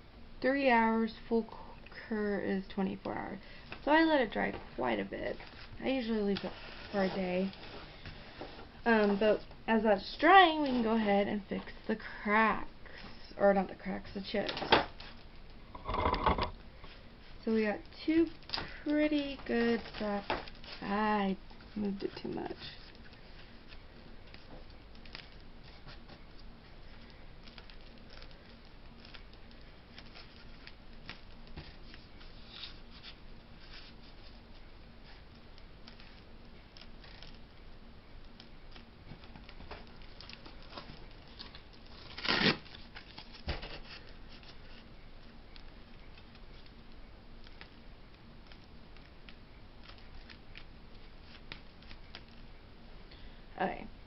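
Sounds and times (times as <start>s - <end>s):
objects handled on tabletop: 15.7s - 17.0s.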